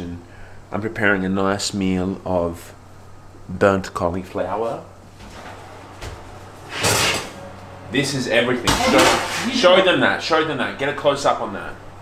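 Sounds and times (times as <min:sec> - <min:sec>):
drawer sliding open: 0:05.1 - 0:07.4.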